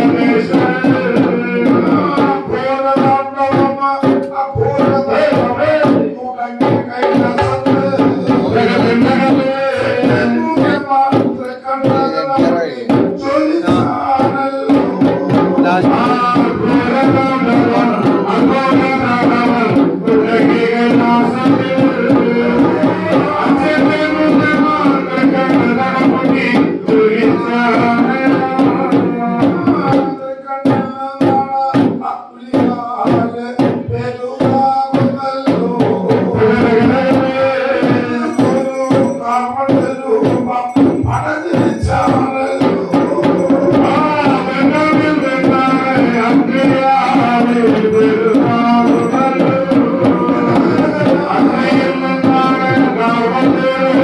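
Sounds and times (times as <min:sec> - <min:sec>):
hand drums beating: 0:00.0 - 0:54.0
ritual singing: 0:00.0 - 0:54.0.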